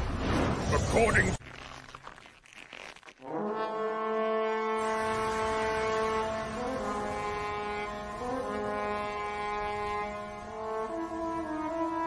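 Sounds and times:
war horn long blast: 3.2s - 12.0s.

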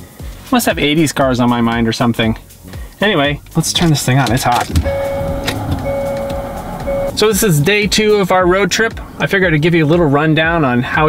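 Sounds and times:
engine and fan noise: 3.4s - 10.1s
steady electronic tone: 4.8s - 7.5s.

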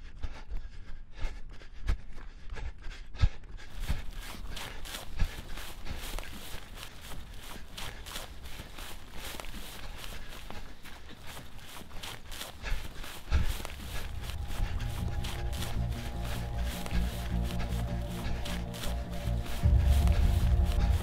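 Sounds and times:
running footsteps in grass: 3.4s - 21.0s.

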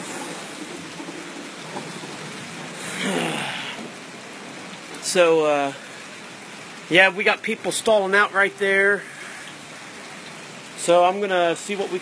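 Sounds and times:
rain falling: 0.0s - 12.0s.

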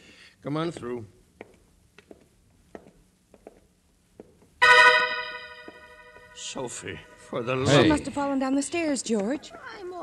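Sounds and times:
faint footsteps: 0.0s - 4.6s, 5.3s - 7.4s
dramatic keyboard chord sting: 4.6s - 7.3s.

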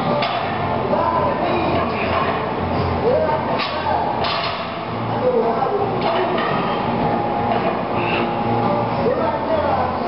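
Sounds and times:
busy weightlifting gym noise: 0.0s - 10.0s.

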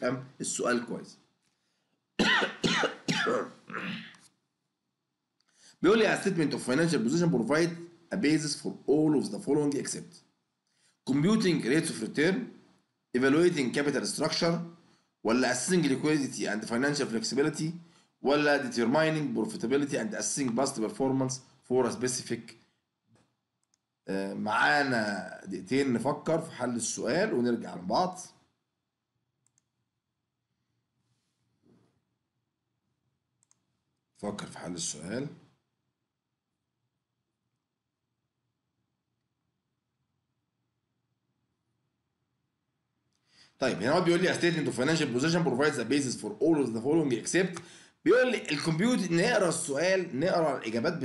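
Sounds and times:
man speaking: 0.0s - 1.4s, 5.8s - 10.3s, 11.0s - 22.7s, 24.0s - 28.5s, 34.2s - 35.6s, 43.6s - 51.0s
man coughing: 2.2s - 4.2s
faint mouse clicks: 23.1s - 23.9s, 29.4s - 29.8s, 33.4s - 33.7s.

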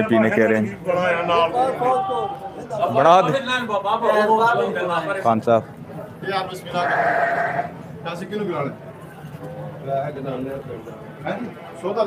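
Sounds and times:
sheep bleating: 6.7s - 7.8s.

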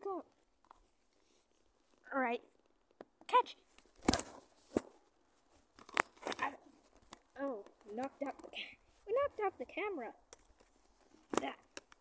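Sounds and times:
scraping and handling noise: 0.3s - 9.6s, 10.2s - 12.0s.

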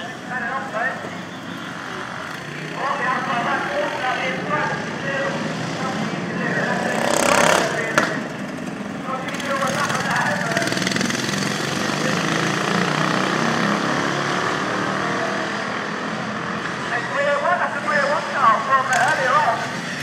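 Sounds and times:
lawn mower engines running past: 1.6s - 20.0s.

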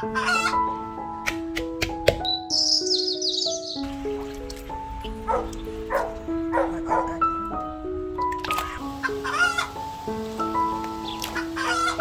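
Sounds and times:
background music of held notes: 0.0s - 12.0s.

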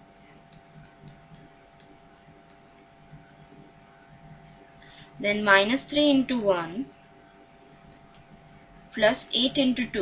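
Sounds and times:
faint steady hum: 0.0s - 10.0s
stylus tapping on pen tablet: 0.5s - 3.2s.

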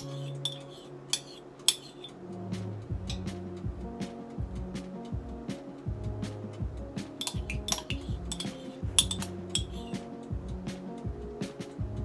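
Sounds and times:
metal spoon clinking in ceramic mug: 0.0s - 2.1s, 7.2s - 10.0s
background music: 0.0s - 12.0s.

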